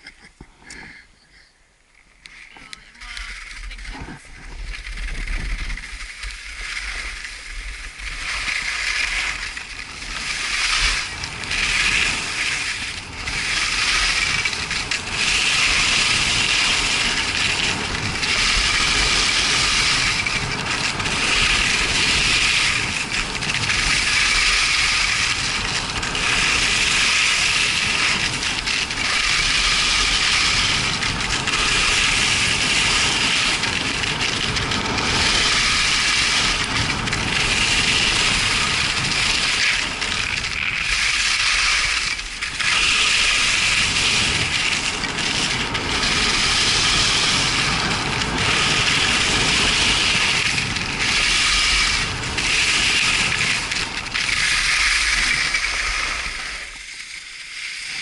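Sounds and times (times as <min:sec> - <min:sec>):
skis scraping on snow: 0:02.0 - 0:58.0
wind rushing past microphone: 0:02.7 - 0:57.0.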